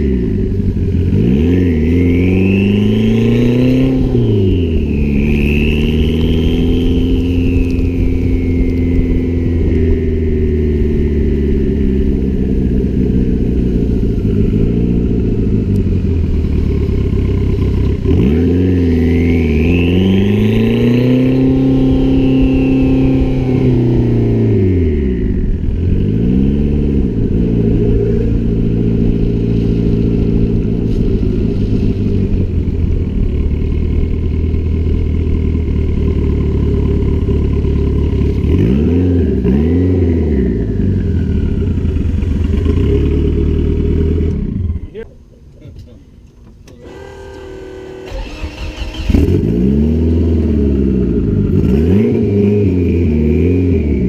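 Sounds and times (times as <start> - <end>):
car engine accelerating: 0.0 - 54.0
high engine whine: 0.0 - 54.0.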